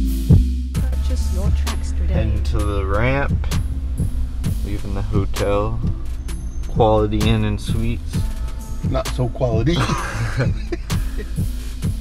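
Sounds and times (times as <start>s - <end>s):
hip hop music on car stereo: 0.0s - 12.0s
steady low rumble: 0.3s - 12.0s.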